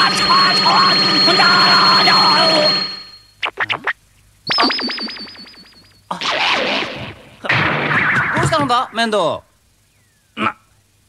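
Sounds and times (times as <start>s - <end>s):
falling synthesized chirps: 0.0s - 3.7s, 4.5s - 6.1s
high wavering synthesized tone: 0.0s - 3.9s, 4.5s - 6.0s.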